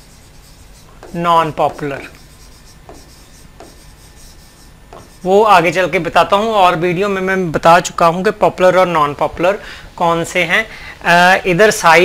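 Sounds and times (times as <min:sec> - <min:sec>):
pen strokes on touchscreen: 0:00.0 - 0:05.5.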